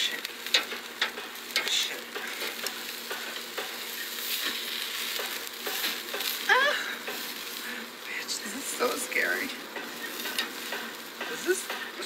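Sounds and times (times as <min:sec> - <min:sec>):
food sizzling in frying: 0:00.0 - 0:12.0.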